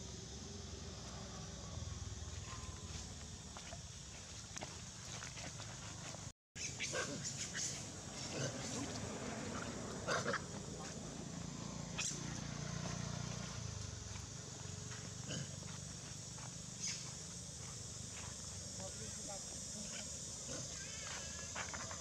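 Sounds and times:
monkeys making short calls: 6.6 - 8.6.

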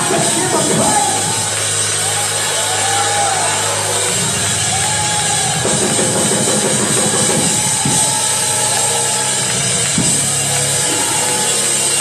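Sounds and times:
live gospel worship music: 0.0 - 12.0.

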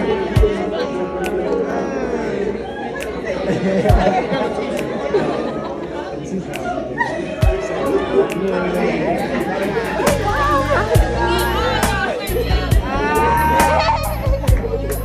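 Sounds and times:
background music: 0.0 - 15.0
people chatting: 0.0 - 15.0.

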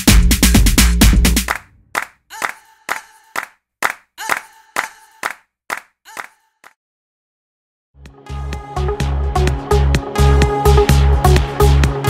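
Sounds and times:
electronic dance music: 0.0 - 3.1, 8.0 - 12.0
sharp clap-like hits: 0.0 - 6.3.

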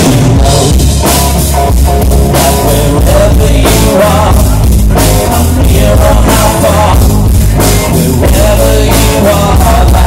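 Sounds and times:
bass guitar: 0.0 - 10.0
electric guitar: 0.0 - 10.0
steady drum beat: 0.0 - 10.0.

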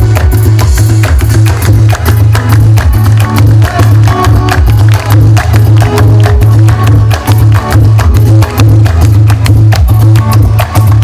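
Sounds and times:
driving percussion: 0.0 - 11.0
heavy bass line: 0.0 - 11.0
live band playing loudly: 0.0 - 11.0.

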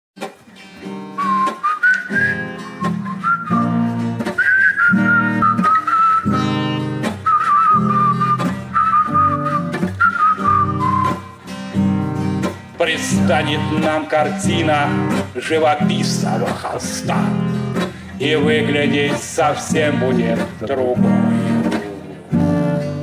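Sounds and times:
acoustic guitar strumming: 0.2 - 23.0
whistled melody: 1.0 - 11.5.

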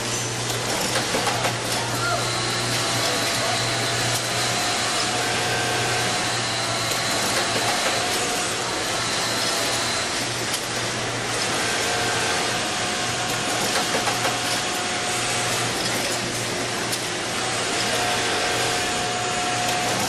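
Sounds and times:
sewing machine whirring: 0.0 - 20.0.

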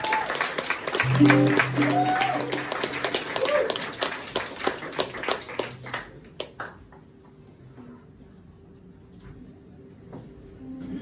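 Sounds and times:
small audience clapping: 0.0 - 7.2.

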